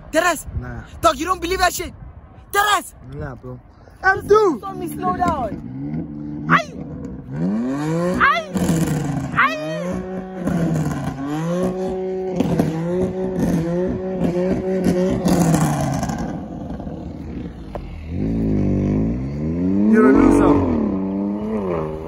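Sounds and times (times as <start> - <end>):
sports car engine revving: 4.3 - 22.0.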